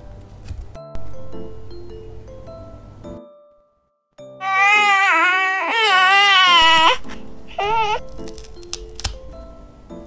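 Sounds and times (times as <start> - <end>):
baby crying: 4.4 - 8.0.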